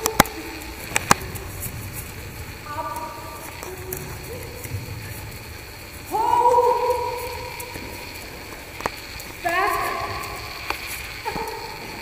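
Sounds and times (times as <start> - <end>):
voice calling long held notes: 0.0 - 12.0.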